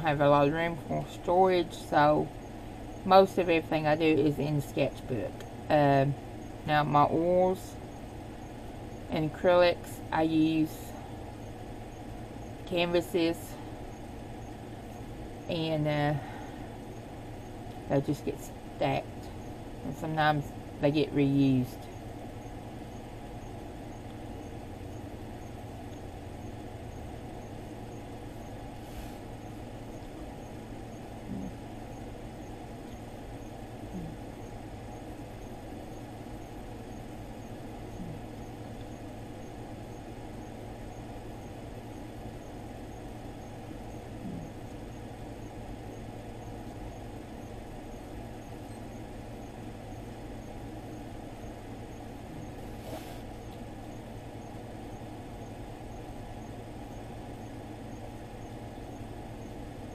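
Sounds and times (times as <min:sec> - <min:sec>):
low room hum: 0:00.0 - 0:59.9.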